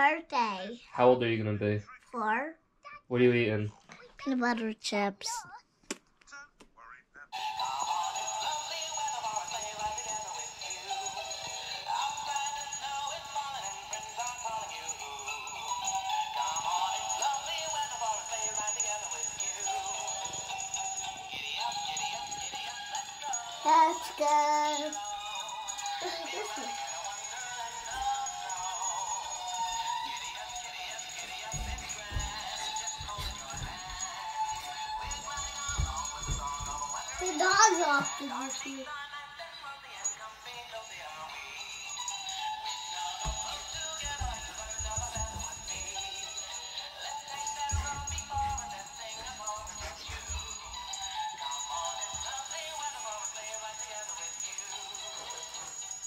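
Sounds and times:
toy singing through small speaker: 7.3s - 56.0s.

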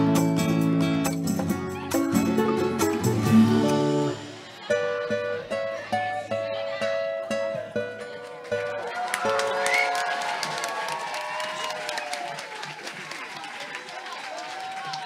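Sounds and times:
plucked guitar notes: 0.0s - 9.6s
crowd voices: 0.0s - 15.0s
scattered clapping: 8.2s - 15.0s.

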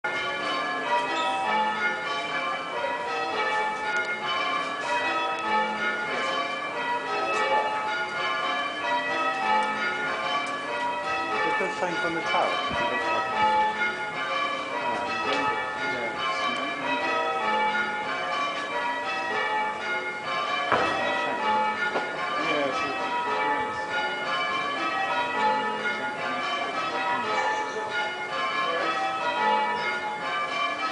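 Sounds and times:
church bells ringing: 0.0s - 30.9s.

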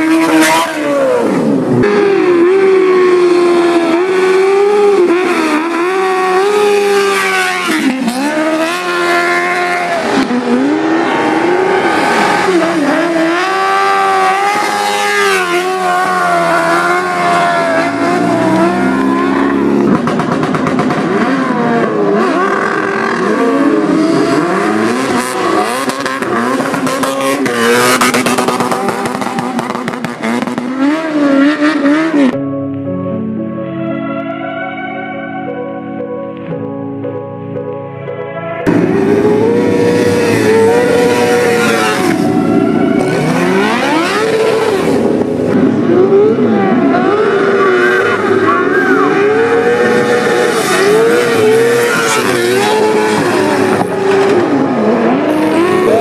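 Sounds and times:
engines revving at high revs: 0.0s - 32.4s, 38.7s - 56.0s.

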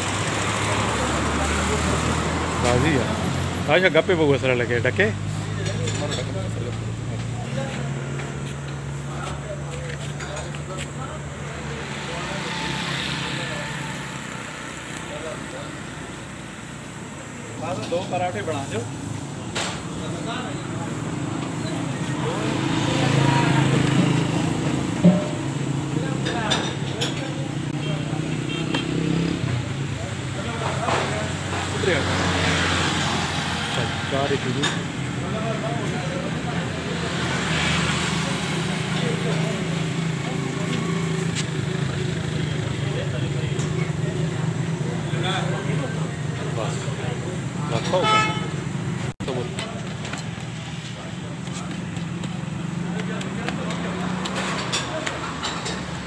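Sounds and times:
vehicle engine passing: 0.0s - 56.0s
voices: 0.0s - 56.0s
vehicle horn toot: 47.8s - 48.6s.

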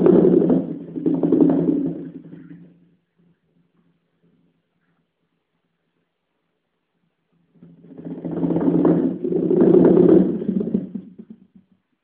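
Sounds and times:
rapid drum roll: 0.0s - 2.8s, 7.5s - 12.0s.

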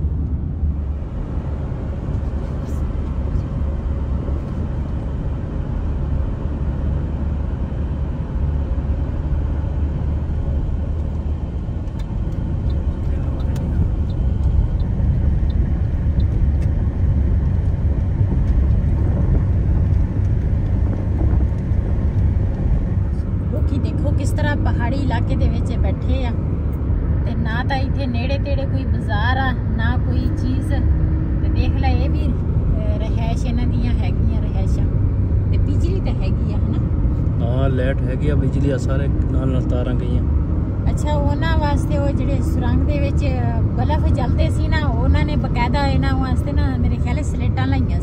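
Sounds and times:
car cabin road rumble: 0.0s - 48.0s.

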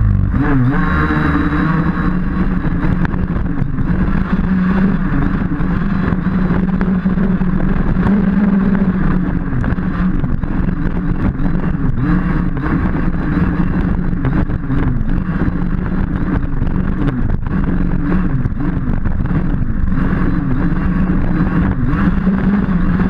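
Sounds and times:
buggy knocking on bumps: 0.0s - 23.0s
two-stroke engine revving: 0.0s - 23.0s.

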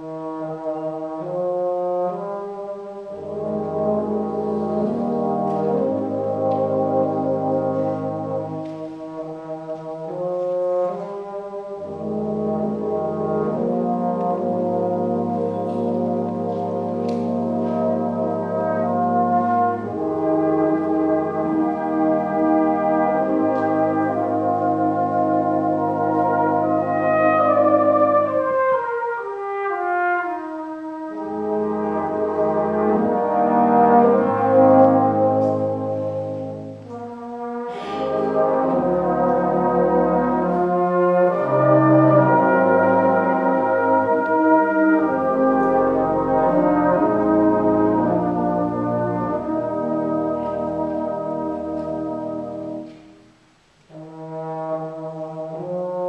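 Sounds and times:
brass band playing a hymn: 0.0s - 56.0s.

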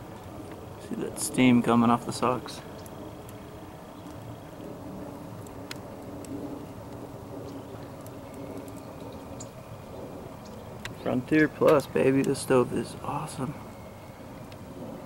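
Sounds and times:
fire crackles: 0.0s - 15.0s
fire rushing in wood stove: 0.0s - 15.0s.

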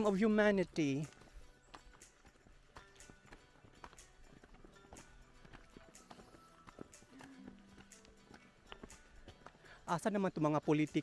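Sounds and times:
faint background music: 0.0s - 11.0s
footsteps on stony dirt path: 0.0s - 11.0s.

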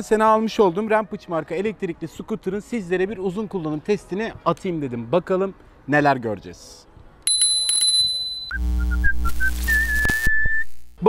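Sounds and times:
high steady ringing tone: 7.3s - 9.0s
whistled tune: 8.2s - 10.7s.

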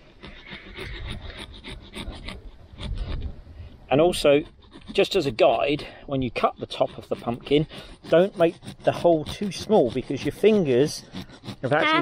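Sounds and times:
saw rasping through pumpkin: 0.0s - 12.0s.

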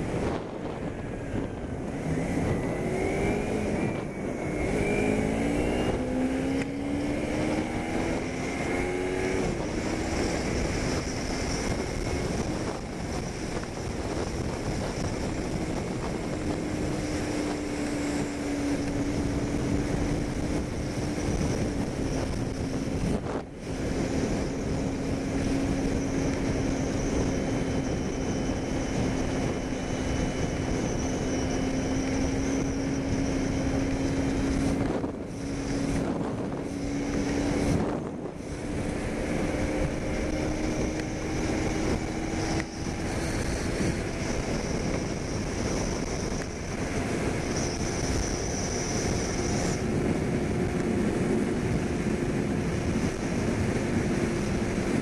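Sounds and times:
motorcycle engine accelerating: 0.0s - 55.0s
wind and road noise: 0.0s - 55.0s.

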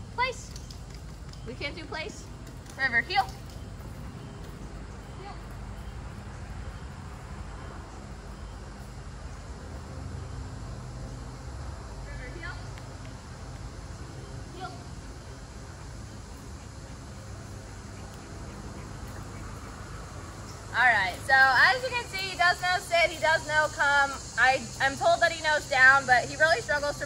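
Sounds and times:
low outdoor rumble: 0.0s - 27.0s.

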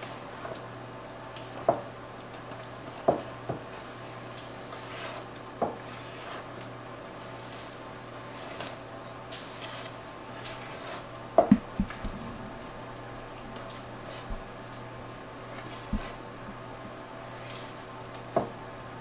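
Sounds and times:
spoon stirring batter: 3.0s - 6.5s, 7.2s - 12.8s.

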